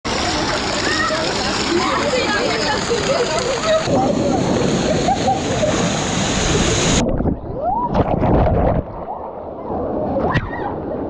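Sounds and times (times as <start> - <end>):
pool water splashing: 0.1 - 11.0.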